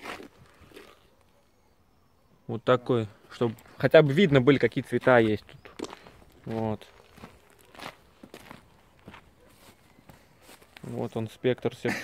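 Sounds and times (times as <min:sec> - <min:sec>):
footsteps on gravel: 0:00.0 - 0:01.1, 0:03.5 - 0:11.2.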